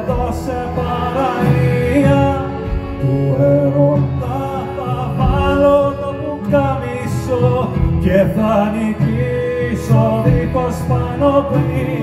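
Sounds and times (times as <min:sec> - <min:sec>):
drums: 0:00.0 - 0:12.0
guitars: 0:00.0 - 0:12.0
person singing: 0:00.0 - 0:12.0.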